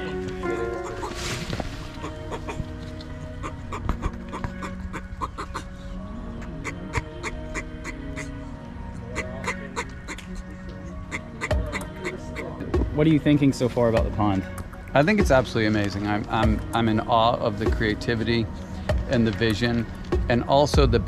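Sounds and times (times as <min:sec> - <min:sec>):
tortoise clucking: 0:00.0 - 0:13.0
background music: 0:00.0 - 0:21.0.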